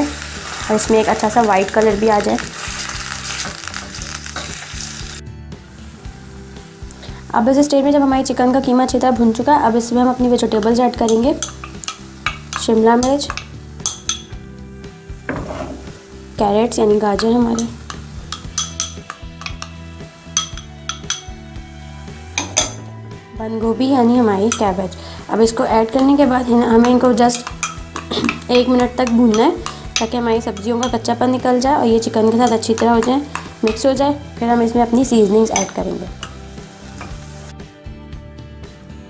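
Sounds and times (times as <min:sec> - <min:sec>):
meat sizzling in hot oil: 0:00.0 - 0:22.7, 0:23.9 - 0:37.6
soft background music: 0:00.0 - 0:39.0
spatula scraping pan: 0:15.3 - 0:16.0, 0:26.0 - 0:34.1.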